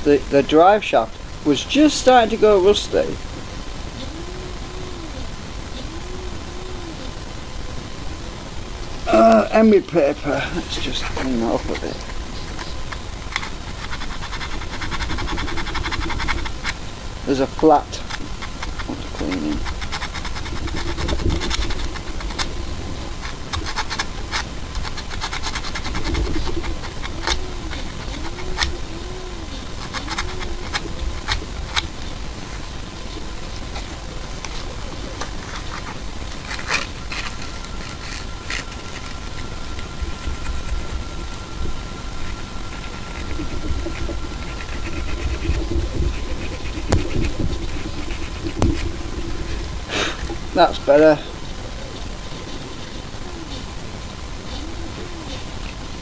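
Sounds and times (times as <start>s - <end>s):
low machine hum: 0.0s - 56.0s
wavering whine: 0.0s - 56.0s
steady high tone: 3.9s - 13.0s, 25.5s - 53.6s
emery paper scratching a shaft: 9.6s - 32.6s, 33.6s - 50.9s.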